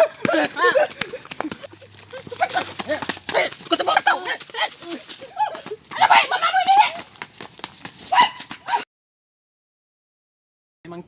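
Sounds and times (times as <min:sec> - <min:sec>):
people shouting excitedly: 0:00.0 - 0:01.0, 0:02.1 - 0:07.2, 0:08.1 - 0:08.8.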